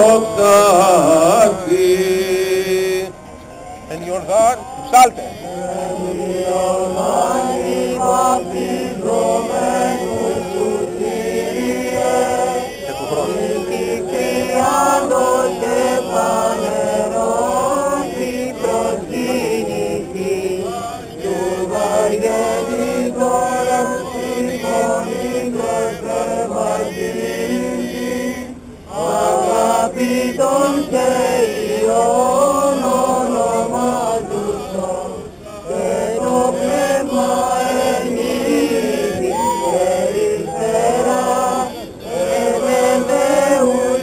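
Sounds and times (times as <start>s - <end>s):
voices chanting: 0.0s - 44.0s.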